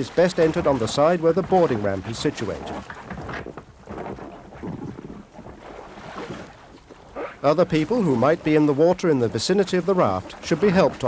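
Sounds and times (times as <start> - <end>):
water sloshing and splashing: 0.0 - 11.0
wind noise on microphone: 2.6 - 6.7.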